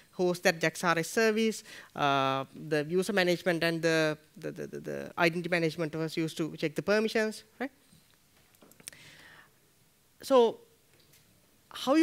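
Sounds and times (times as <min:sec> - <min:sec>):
man breathing into microphone: 0:08.9 - 0:09.6.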